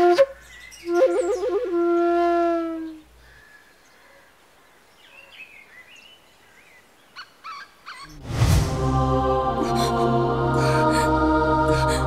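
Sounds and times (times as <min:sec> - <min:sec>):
faint outdoor ambience: 0:00.0 - 0:12.0
bird chirps: 0:05.0 - 0:08.2.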